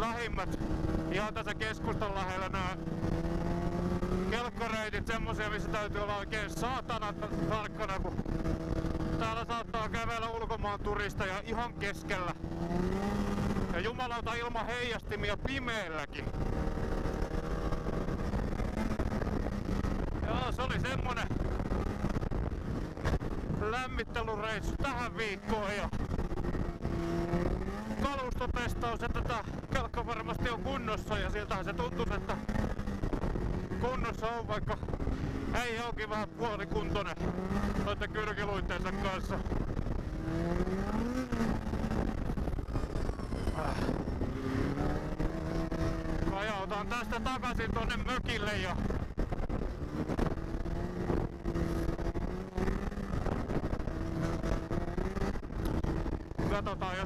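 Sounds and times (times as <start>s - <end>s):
snowmobile engine running: 0.0s - 57.0s
track running noise: 0.0s - 57.0s.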